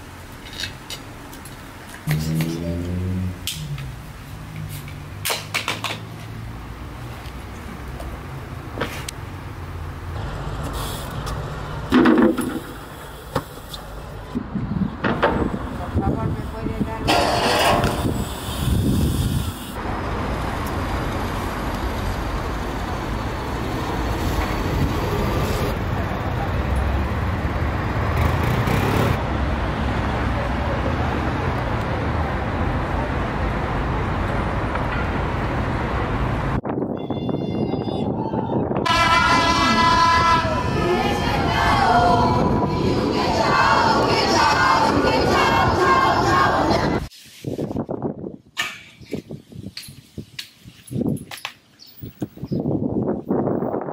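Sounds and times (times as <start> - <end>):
street traffic: 0.0 - 53.9
short car horn: 36.9 - 37.9
loud voices: 37.0 - 47.1.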